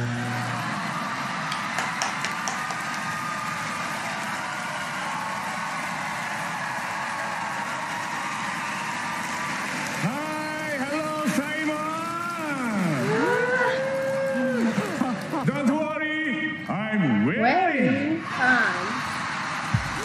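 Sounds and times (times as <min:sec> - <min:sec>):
audience applauding and cheering: 0:00.0 - 0:16.9, 0:17.9 - 0:20.0.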